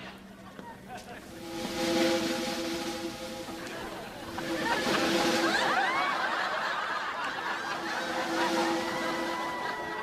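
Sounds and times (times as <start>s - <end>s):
studio audience laughing: 4.4s - 10.0s.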